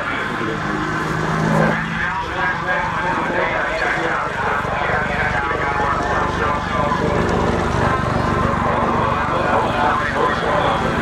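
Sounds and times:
helicopter rotor chop: 0:00.0 - 0:11.0
turboshaft engines whining: 0:00.0 - 0:11.0.

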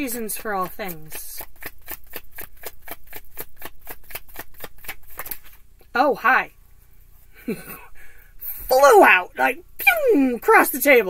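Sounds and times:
cards being shuffled: 0:00.3 - 0:05.7.

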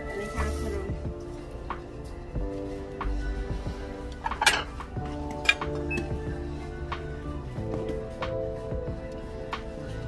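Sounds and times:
background music with held notes: 0:00.0 - 0:10.0
ceramic cups and plates clinking: 0:04.2 - 0:06.1.

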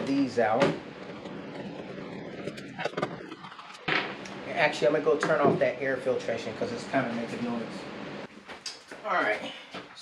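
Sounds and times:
air filtration fan running: 0:00.0 - 0:10.0.

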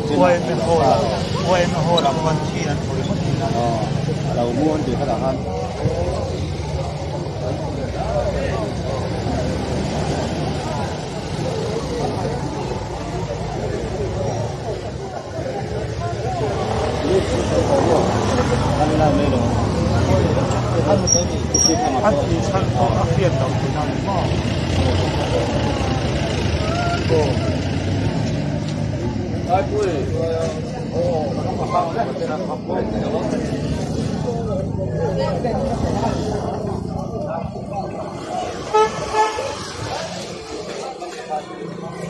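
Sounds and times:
crowd talking: 0:00.0 - 0:42.0.

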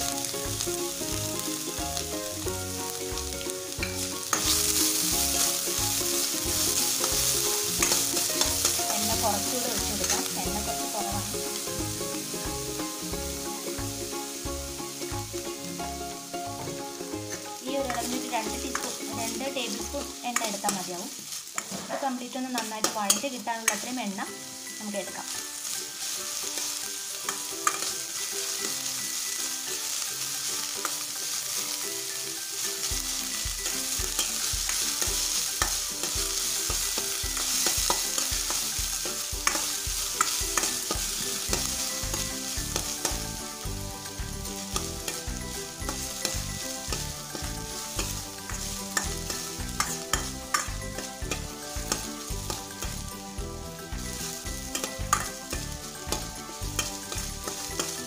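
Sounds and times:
food sizzling in hot oil: 0:00.0 - 0:58.0
metal spatula scraping wok: 0:03.8 - 0:13.1, 0:17.2 - 0:53.4, 0:54.0 - 0:58.0.

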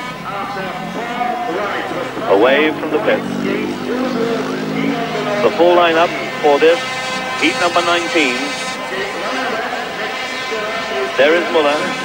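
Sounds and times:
motorcycle engine running: 0:00.0 - 0:11.0
man speaking: 0:00.6 - 0:08.5.

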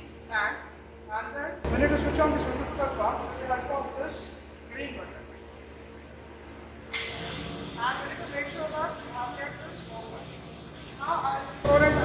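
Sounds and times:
pump switching on: 0:06.9 - 0:12.0.

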